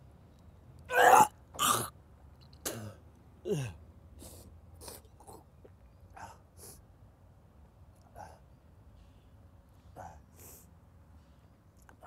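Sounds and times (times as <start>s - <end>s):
groan: 0.9s - 1.9s, 2.8s - 3.8s
man retching: 0.9s - 1.9s.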